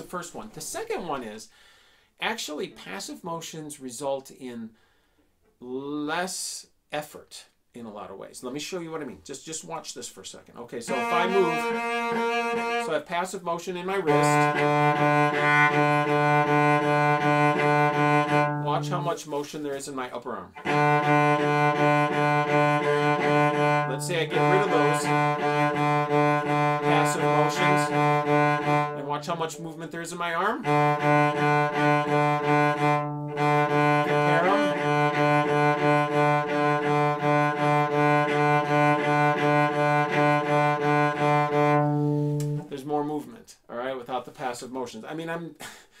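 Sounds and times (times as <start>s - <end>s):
cello bowed on low note: 10.9s - 13.0s, 13.9s - 19.1s, 20.6s - 29.6s, 30.6s - 42.7s.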